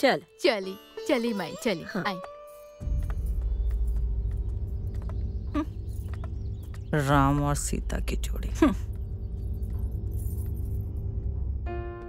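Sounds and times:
low film score drone: 2.8 - 12.0
soft metallic jingle: 9.2 - 11.4.

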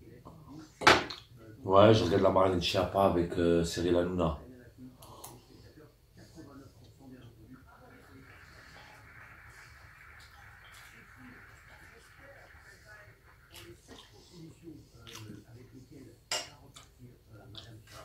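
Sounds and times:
faint steady hiss: 0.0 - 18.0
soft chewing: 13.2 - 18.0
cutlery sounds: 16.3 - 17.0.

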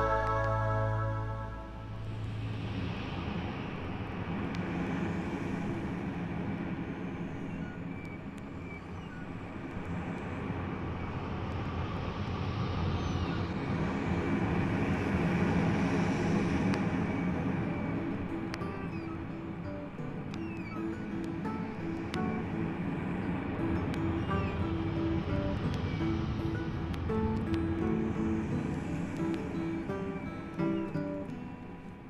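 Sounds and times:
steady rushing rumbling noise: 0.0 - 32.0.

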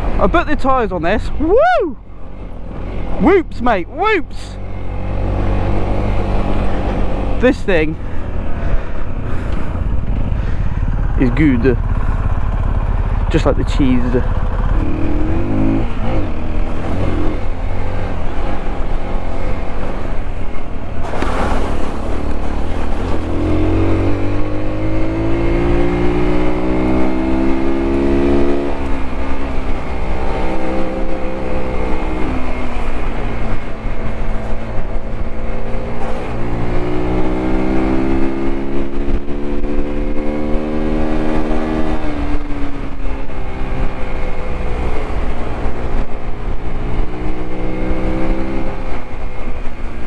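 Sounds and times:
motorcycle engine running: 1.4 - 50.0.

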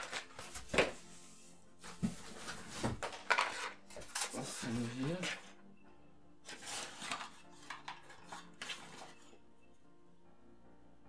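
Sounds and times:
faint background music: 0.0 - 11.0
scraping and rustling: 6.5 - 9.3.

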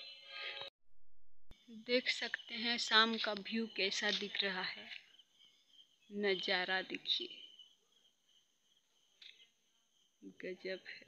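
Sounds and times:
crickets chirring: 1.6 - 11.0.

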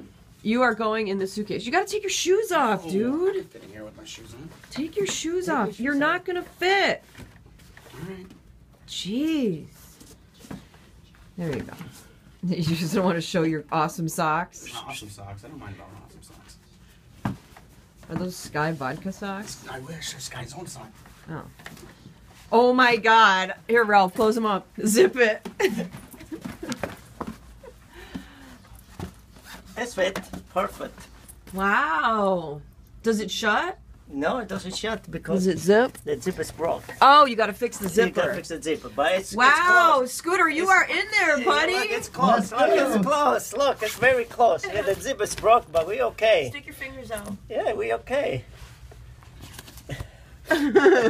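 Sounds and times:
person laughing loudly: 50.5 - 51.0.

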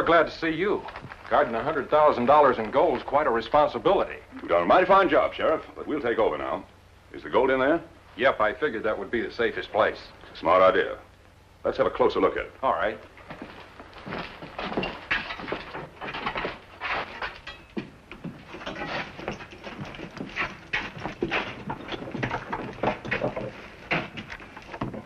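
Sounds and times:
footsteps on wooden floor: 13.2 - 25.0.

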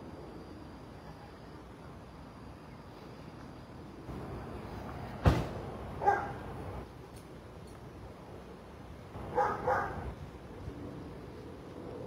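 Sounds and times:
street noise: 0.0 - 12.0
dog barking: 6.0 - 6.4, 9.3 - 10.1.

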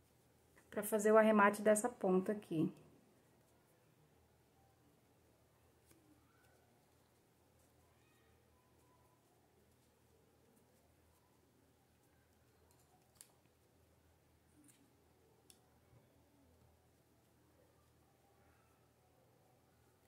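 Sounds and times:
small scissors snipping: 12.7 - 13.4.

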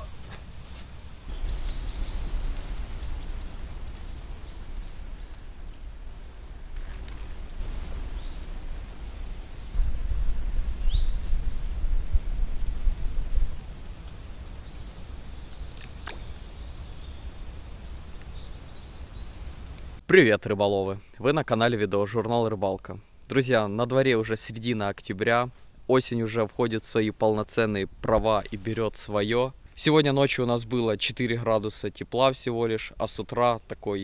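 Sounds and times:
wind rumbling on microphone: 0.0 - 20.0
small birds chirping: 1.3 - 20.0.

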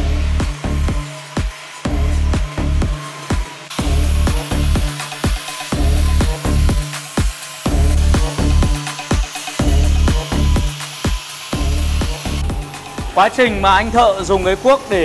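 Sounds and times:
angle grinder stripping bark: 0.0 - 15.0
electronic dance music: 0.0 - 15.0.

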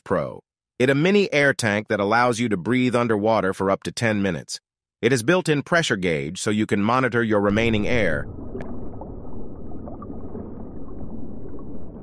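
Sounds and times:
low underwater rumble: 7.5 - 12.0.

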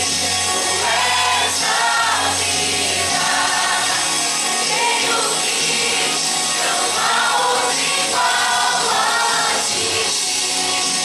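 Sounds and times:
mixed choir singing: 0.4 - 10.5.

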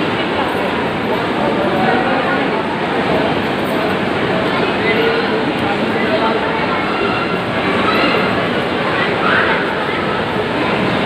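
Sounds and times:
busy shop din: 0.0 - 11.0
indistinct voices: 0.0 - 11.0.

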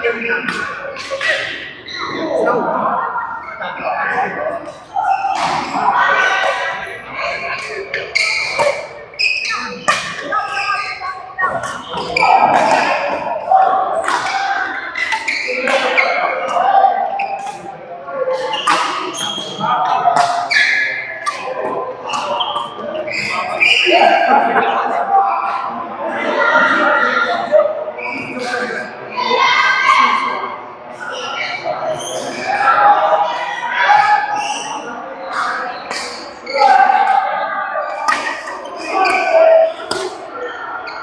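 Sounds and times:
voices talking: 0.0 - 41.0
rackets striking shuttlecock: 7.6 - 8.9, 9.8 - 10.3, 11.5 - 13.3, 14.0 - 16.6, 18.3 - 23.8, 35.3 - 37.2, 38.0 - 40.2.

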